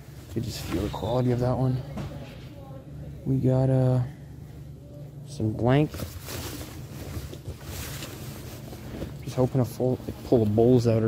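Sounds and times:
jackets rustling: 5.9s - 10.4s.

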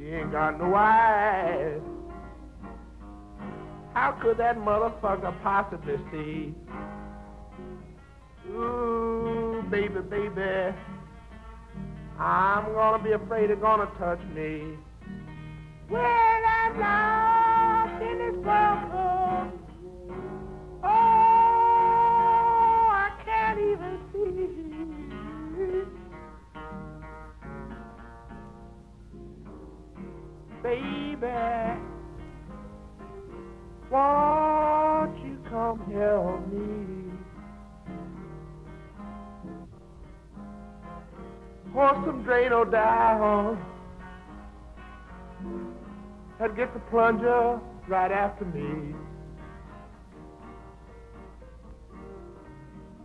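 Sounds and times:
slow blues guitar picking: 0.0s - 53.0s.

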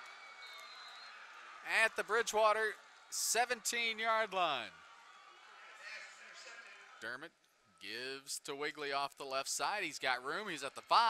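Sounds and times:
man commentating: 1.6s - 4.7s, 5.8s - 11.0s.

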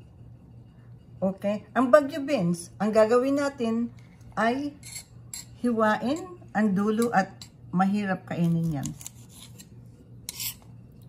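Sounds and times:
knife cutting on marble board: 8.5s - 10.7s.

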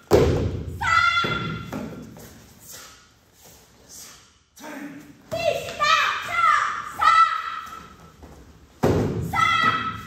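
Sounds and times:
child shouting: 0.8s - 1.7s, 5.3s - 7.9s, 9.2s - 10.0s.

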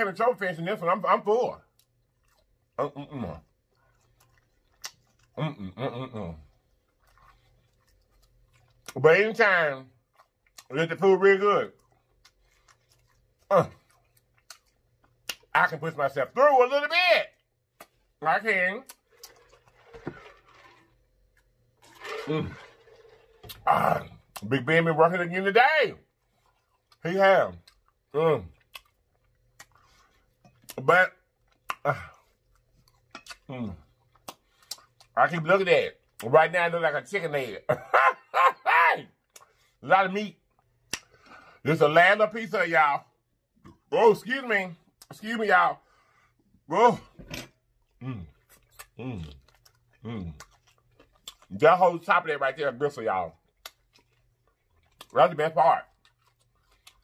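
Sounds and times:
lip smacking: 3.4s - 5.6s, 11.7s - 15.6s, 27.6s - 35.2s, 47.8s - 51.6s, 53.4s - 55.2s.

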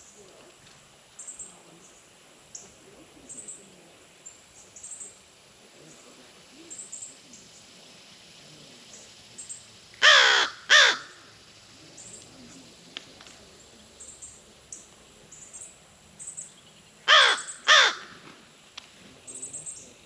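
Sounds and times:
crow cawing: 10.0s - 11.3s, 17.0s - 18.2s.

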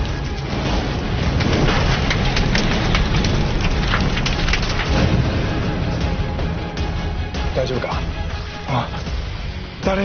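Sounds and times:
heavy rain: 0.0s - 9.8s.

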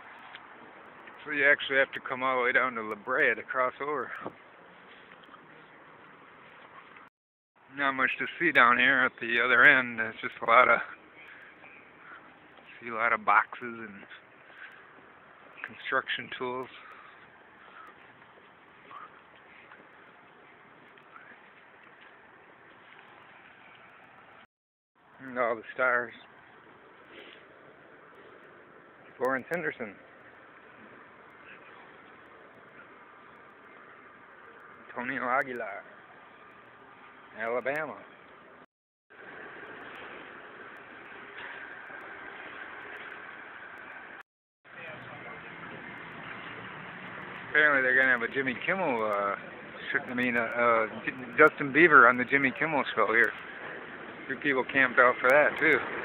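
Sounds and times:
faint city street noise: 0.0s - 56.0s.

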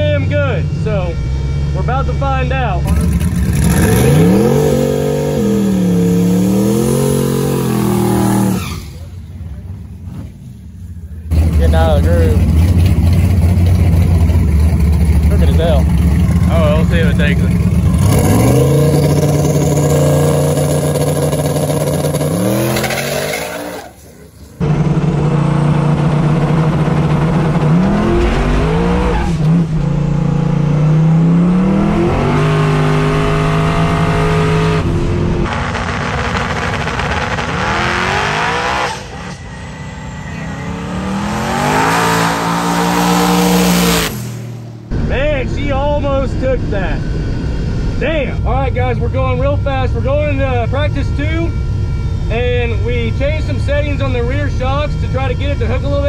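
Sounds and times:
race car engine at full throttle: 0.0s - 56.0s.

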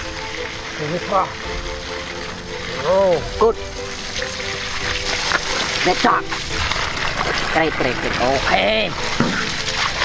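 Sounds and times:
water jet gushing from pipe: 0.0s - 10.0s
water splashing on ground: 0.0s - 10.0s.

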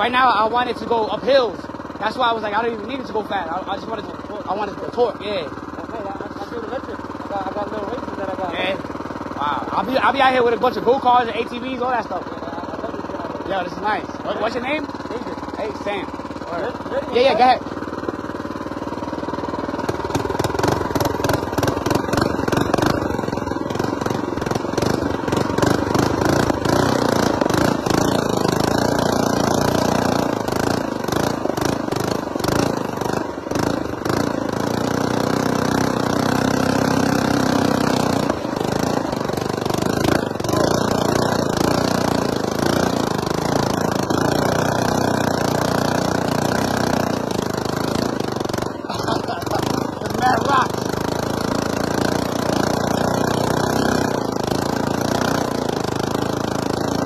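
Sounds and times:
mini bike engine under load: 0.0s - 57.0s
rattle of bumps and buffeting: 0.0s - 57.0s.

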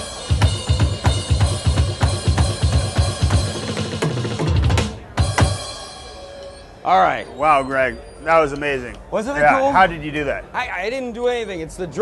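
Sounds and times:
electronic drum groove: 0.0s - 6.1s
ringing drum fill: 0.0s - 6.7s.

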